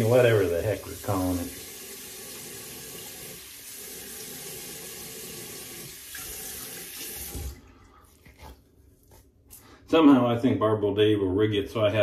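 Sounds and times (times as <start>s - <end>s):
tap running into a sink: 4.4s - 7.6s.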